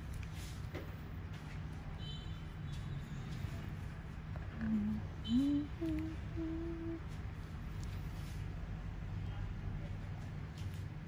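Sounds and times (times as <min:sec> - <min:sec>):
low steady background hum: 0:00.0 - 0:11.0
person humming: 0:04.5 - 0:07.2.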